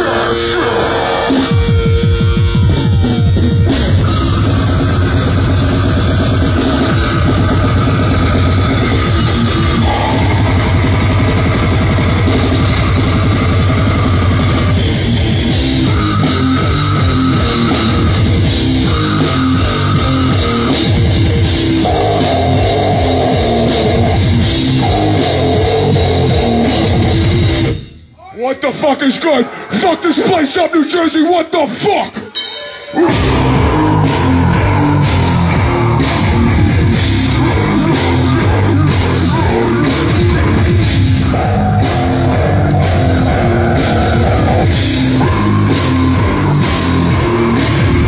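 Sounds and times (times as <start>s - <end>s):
death metal band playing live: 0.0s - 28.0s, 32.2s - 48.0s.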